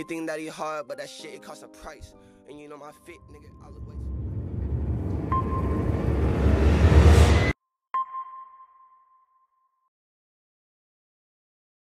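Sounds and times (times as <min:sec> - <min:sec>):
bass-heavy music: 0:03.1 - 0:07.6
rising whoosh: 0:03.2 - 0:07.6.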